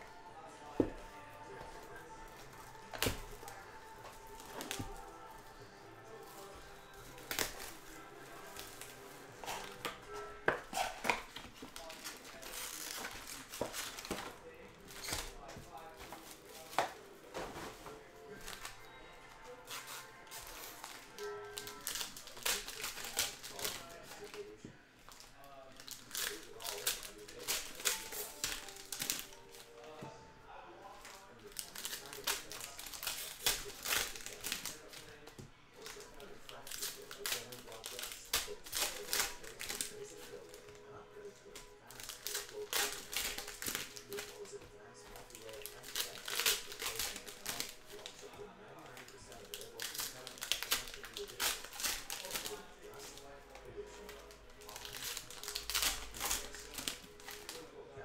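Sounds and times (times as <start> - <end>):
background music: 0.0 - 58.0
foil wrappers tearing and crinkling: 0.6 - 30.0, 30.8 - 57.8.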